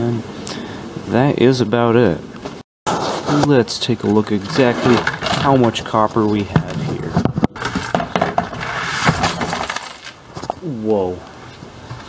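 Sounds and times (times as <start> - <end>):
metal scraps clattering into tub: 4.1 - 10.5.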